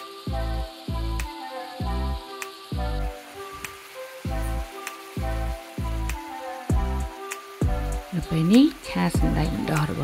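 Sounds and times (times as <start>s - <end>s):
background music with deep bass: 0.0s - 10.0s
bean sprouts sizzling in a skillet: 0.0s - 10.0s.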